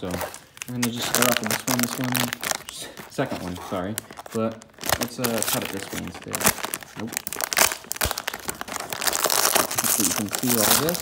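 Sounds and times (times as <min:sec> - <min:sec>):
plastic bag crackling and rustling: 0:00.0 - 0:11.0.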